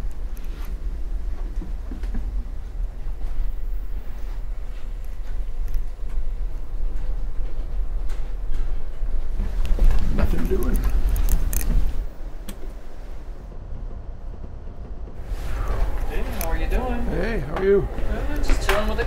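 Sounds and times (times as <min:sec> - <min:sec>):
train rumble from inside: 0:00.0 - 0:19.0.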